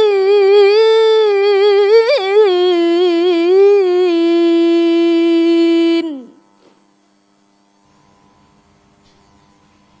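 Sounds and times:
woman reciting long note: 0.0 - 6.4
faint electrical hum: 0.0 - 10.0.

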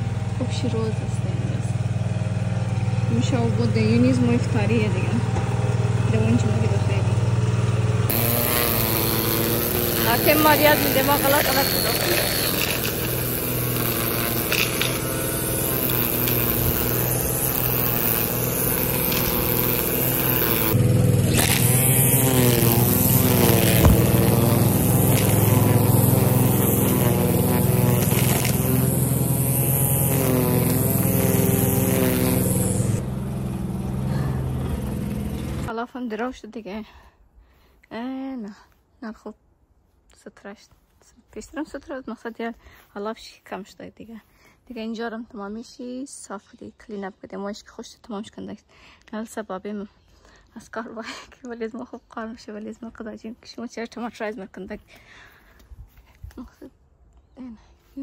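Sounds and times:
steady motor hum: 0.0 - 35.7
string trimmer cutting grass: 0.0 - 35.8
people talking: 0.4 - 1.8, 3.1 - 5.2, 6.1 - 7.2, 8.1 - 12.6, 40.2 - 49.9, 50.6 - 54.8.

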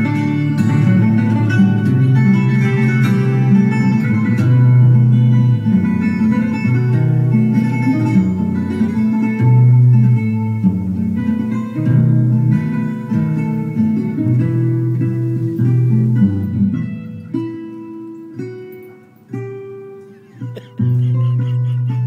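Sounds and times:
plucked guitar music: 0.0 - 22.0.

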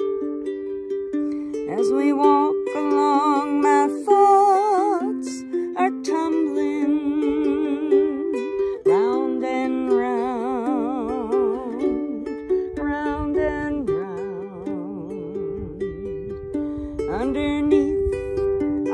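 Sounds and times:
ukulele strumming chords: 0.0 - 18.9
woman singing with vibrato: 1.6 - 16.1, 17.0 - 18.9.

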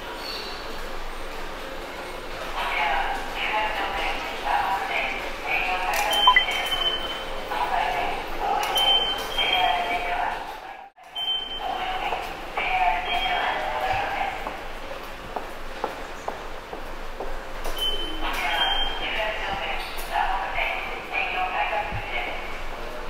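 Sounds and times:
station concourse noise: 0.0 - 23.0
ticket gate beeps: 6.0 - 7.2.

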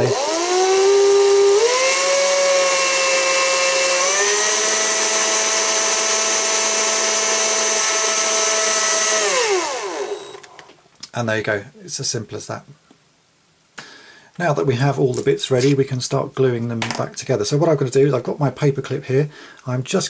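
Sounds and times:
power drill whining: 0.0 - 10.8.

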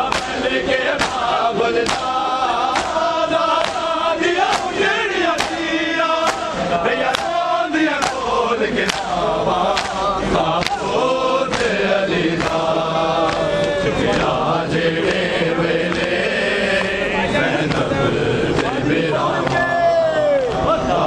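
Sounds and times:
crowd of men chanting: 0.0 - 21.0.

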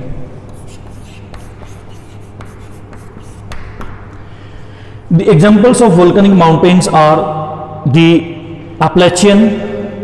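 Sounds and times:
chalk writing on chalkboard: 0.5 - 4.0.

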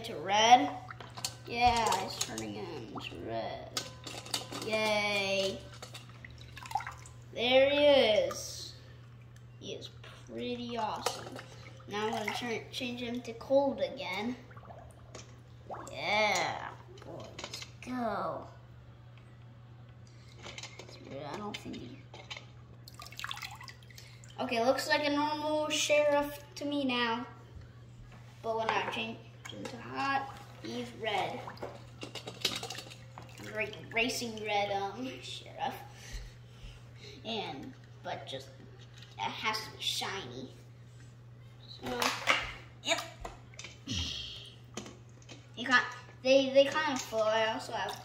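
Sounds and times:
child speaking: 0.0 - 0.9, 1.5 - 3.8, 4.5 - 5.7, 7.3 - 8.8, 9.6 - 14.5, 15.7 - 18.6, 21.0 - 22.0, 24.4 - 27.4, 28.4 - 31.6, 33.4 - 35.9, 37.2 - 38.6, 39.2 - 40.6, 41.7 - 43.2, 45.6 - 48.0
water sloshing in a metal bowl: 0.0 - 17.9, 20.2 - 26.1, 28.5 - 35.9, 44.7 - 48.0.

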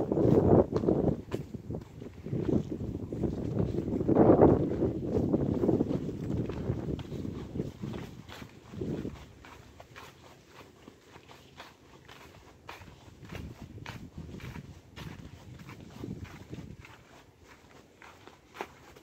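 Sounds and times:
hooves crunching dry leaves: 0.0 - 19.0
soft low hoof thuds: 0.0 - 19.0.

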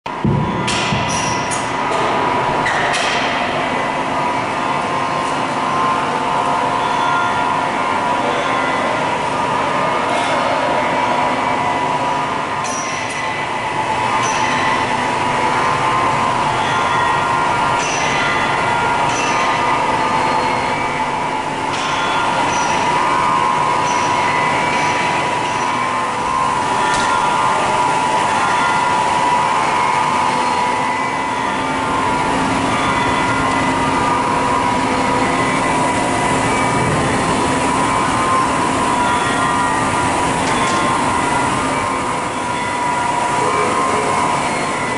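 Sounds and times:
machine tools high whine: 0.1 - 44.9.

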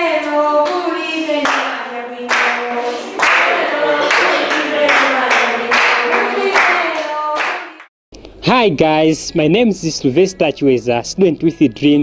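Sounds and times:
group of voices singing: 0.0 - 7.8
hand claps: 2.3 - 2.6, 3.2 - 7.9.

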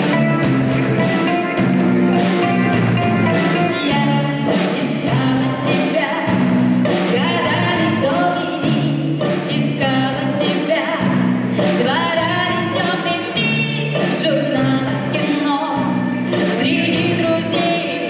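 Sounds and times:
string orchestra playing: 0.0 - 3.8
woman singing: 3.3 - 18.0.

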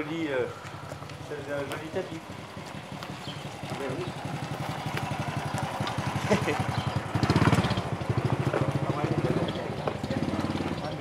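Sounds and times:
motor scooter engine passing: 0.0 - 11.0.

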